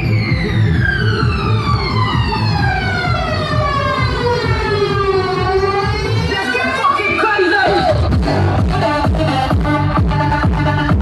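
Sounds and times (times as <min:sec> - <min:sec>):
siren-like synth sweep: 0:00.0 - 0:08.6
dance music: 0:00.0 - 0:11.0
steady bass beat: 0:00.0 - 0:11.0.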